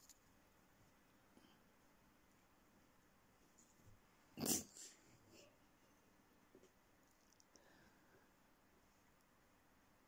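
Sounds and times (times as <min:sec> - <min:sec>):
cat snorting: 0:04.4 - 0:05.0.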